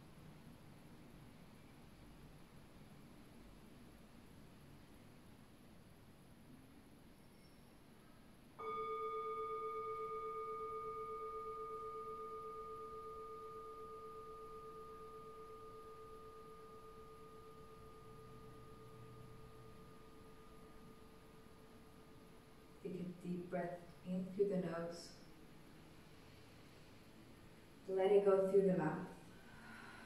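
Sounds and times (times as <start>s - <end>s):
singing bowl ringing: 8.6s - 22.9s.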